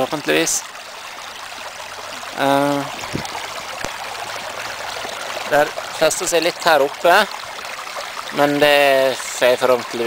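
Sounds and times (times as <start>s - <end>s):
water rushing through sluice: 0.0s - 10.0s.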